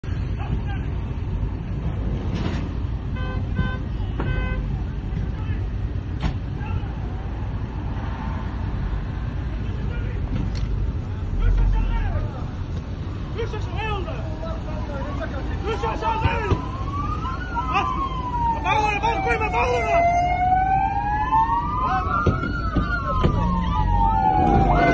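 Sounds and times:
traffic rumble inside a car: 0:00.0 - 0:24.9
car horn tooting: 0:03.1 - 0:04.7.

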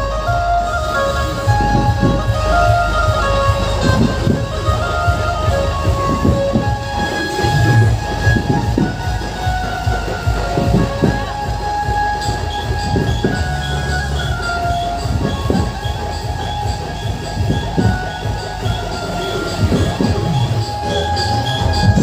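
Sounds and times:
loud music with heavy bass: 0:00.0 - 0:22.0.

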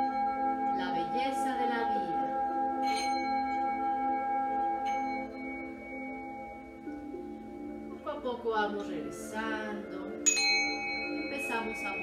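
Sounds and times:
singing bowl ringing: 0:00.0 - 0:08.4, 0:09.0 - 0:12.0.

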